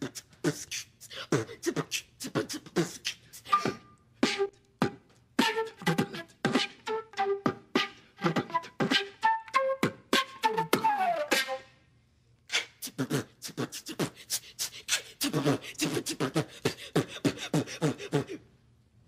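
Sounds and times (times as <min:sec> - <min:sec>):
beatboxing into a microphone: 0:00.0 - 0:06.8, 0:07.4 - 0:09.2, 0:12.5 - 0:18.4
flute playing staccato notes: 0:03.4 - 0:11.8.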